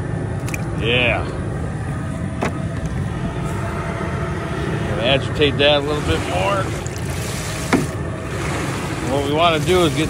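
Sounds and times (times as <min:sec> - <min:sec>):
gas burner roaring: 0:00.0 - 0:10.0.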